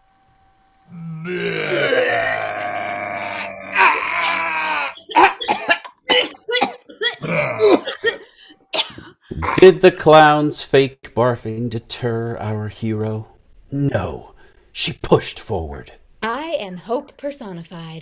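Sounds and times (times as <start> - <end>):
people fake retching: 0.9 - 9.8.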